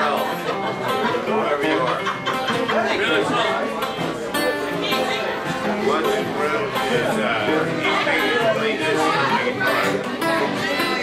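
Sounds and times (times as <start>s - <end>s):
acoustic string band playing: 0.0s - 11.0s
guitars strummed: 0.0s - 11.0s
voices chattering: 0.0s - 11.0s.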